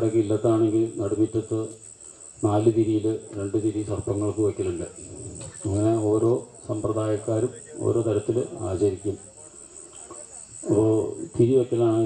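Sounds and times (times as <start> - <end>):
man speaking over microphone: 0.0 - 1.8, 2.4 - 9.6, 10.6 - 12.0
crickets chirping: 0.0 - 12.0.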